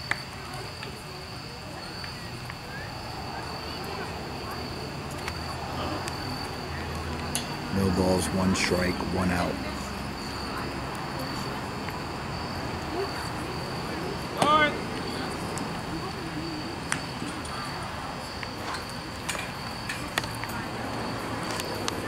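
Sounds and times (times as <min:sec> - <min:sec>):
crickets chirping: 0:00.0 - 0:22.0
murmur of distant voices: 0:00.0 - 0:22.0.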